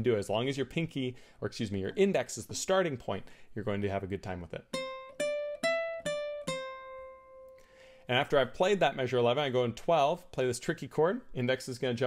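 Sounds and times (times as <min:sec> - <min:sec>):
ukulele notes plucked: 0:04.8 - 0:07.6.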